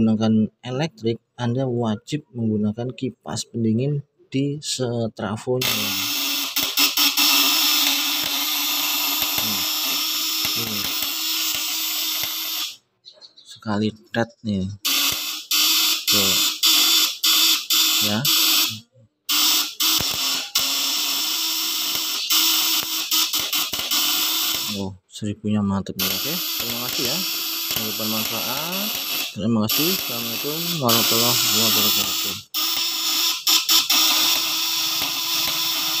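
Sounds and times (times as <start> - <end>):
inverter contact points buzzing: 5.6 - 12.8, 14.8 - 24.9, 25.9 - 36.0.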